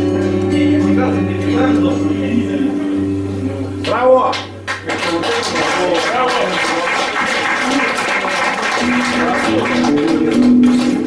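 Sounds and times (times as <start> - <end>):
guitar notes ringing: 0.0 - 5.2, 8.8 - 11.0.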